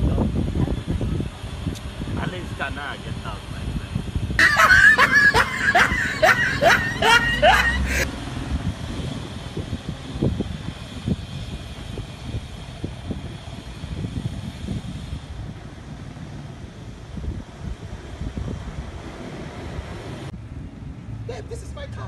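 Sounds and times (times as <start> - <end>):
wind buffeting microphone: 0.0 - 20.3
street traffic: 0.0 - 22.0.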